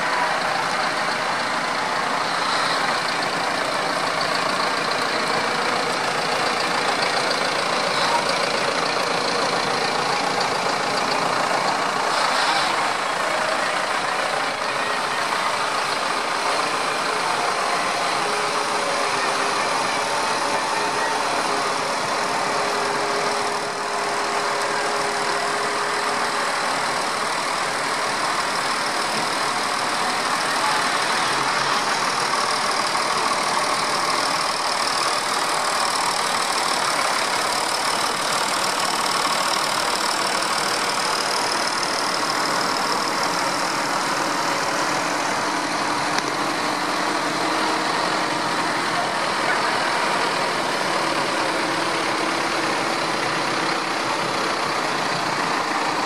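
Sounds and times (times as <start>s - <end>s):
tractor diesel engines passing: 0.0s - 56.0s.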